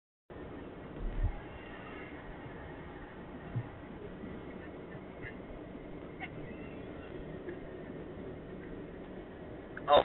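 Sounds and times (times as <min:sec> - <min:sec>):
car road and engine noise: 0:00.3 - 0:10.0.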